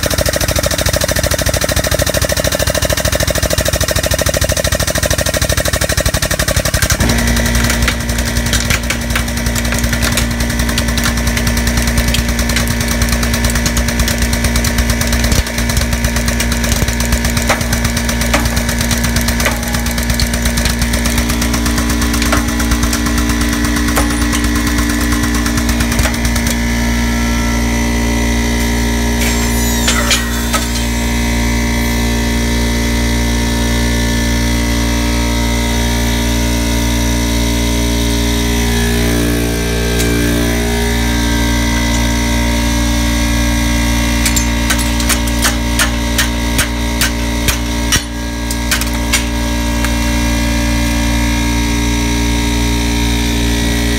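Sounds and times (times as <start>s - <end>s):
air compressor humming: 0.0s - 53.9s
metal casing crackling and snapping: 6.5s - 26.9s, 39.8s - 51.2s.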